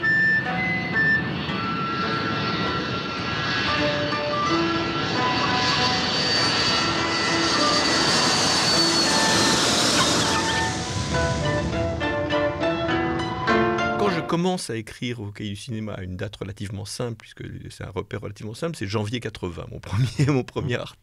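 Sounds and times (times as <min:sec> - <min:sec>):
jet airliner engines rushing: 0:00.0 - 0:13.9
high steady jet whine: 0:00.0 - 0:14.3.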